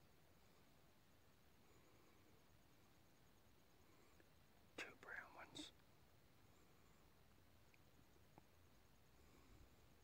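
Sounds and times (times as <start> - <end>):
person whispering: 4.8 - 5.8.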